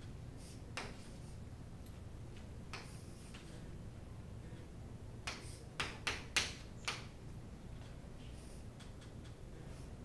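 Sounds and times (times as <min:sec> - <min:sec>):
chalk writing on chalkboard: 0:00.4 - 0:01.4.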